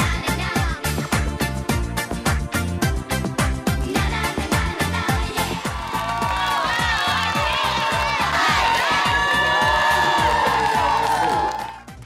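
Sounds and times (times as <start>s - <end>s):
dance music with steady beat: 0.0s - 11.9s
audience cheering and whooping: 5.4s - 11.9s.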